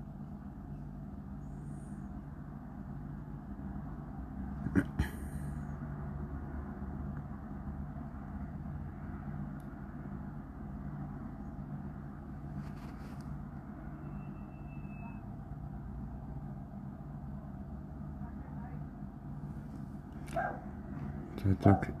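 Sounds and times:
faint high whistle: 13.9 - 15.3.

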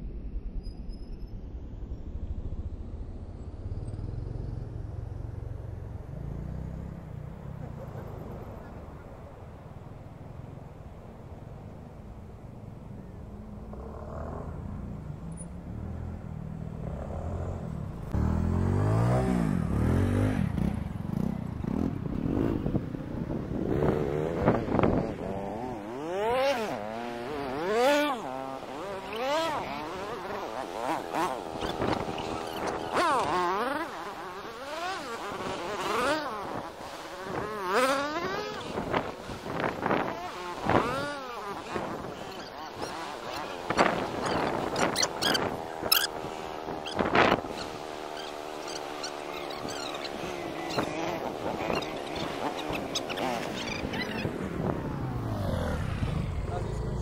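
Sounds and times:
motorcycle engine revving: 13.1 - 57.0.

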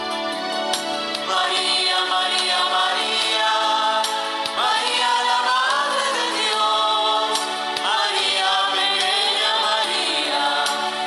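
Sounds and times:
choir singing a hymn: 1.0 - 11.0.

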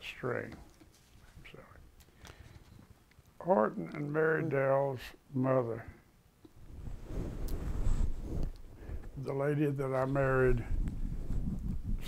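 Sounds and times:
faint breath: 2.1 - 2.8.

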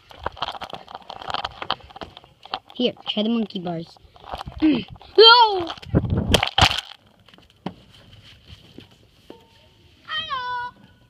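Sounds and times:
plush toys rustling on microphone: 0.0 - 9.4
child's voice: 5.1 - 5.8, 10.1 - 10.9.

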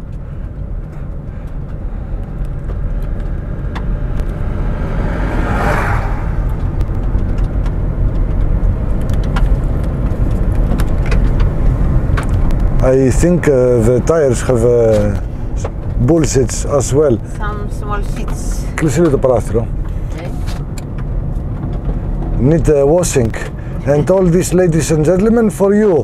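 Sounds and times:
car engine running: 0.0 - 26.0
road and tyre noise: 0.0 - 26.0
brief whoosh: 4.3 - 7.0.

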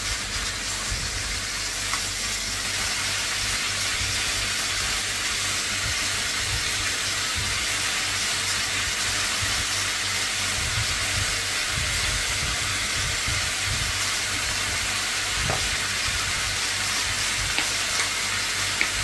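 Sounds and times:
onion and mince sizzling in pan: 0.0 - 19.0.

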